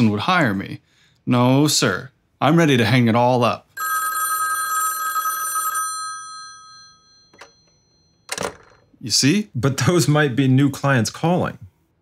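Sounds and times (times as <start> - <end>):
telephone bell ringing: 3.8 - 8.9.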